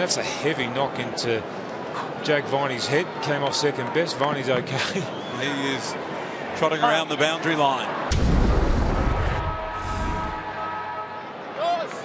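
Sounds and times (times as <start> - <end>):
deep rumbling boom: 8.1 - 10.4.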